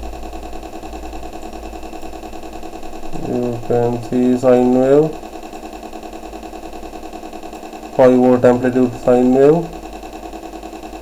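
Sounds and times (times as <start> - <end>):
low pulsing buzz: 0.0 - 11.0.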